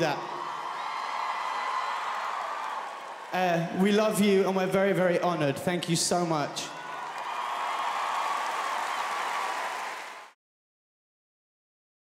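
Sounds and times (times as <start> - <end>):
audience applauding: 0.0 - 3.7, 6.7 - 10.4.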